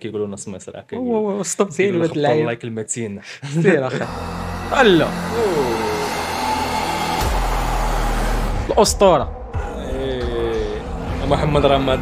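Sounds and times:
low drone: 4.0 - 12.0.

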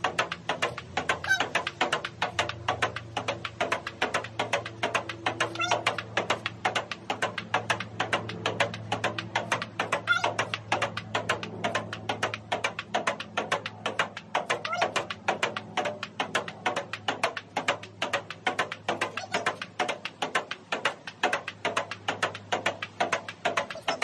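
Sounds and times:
ping-pong ball clicks: 0.0 - 24.0.

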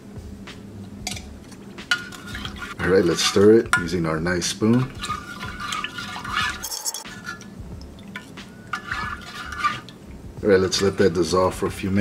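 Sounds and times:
faint music: 0.0 - 12.0
metal cup clinking: 1.1 - 4.0, 4.6 - 10.0.

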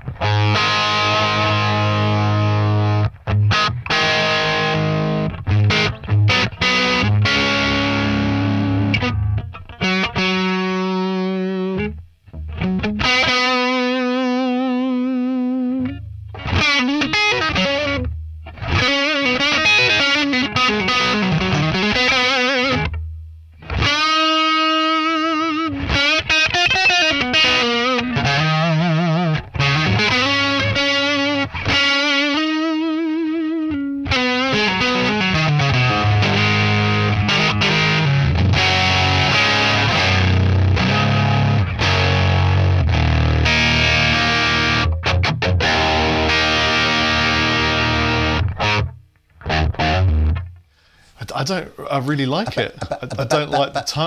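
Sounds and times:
loud electric guitar: 0.0 - 51.0.

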